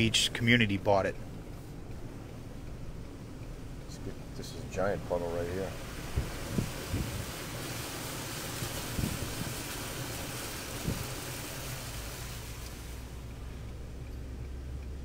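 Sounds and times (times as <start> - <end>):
low engine hum: 0.0 - 15.0
tyres hissing through flood water: 4.0 - 13.6
wind on microphone: 6.0 - 7.5, 8.6 - 9.7, 10.7 - 11.2.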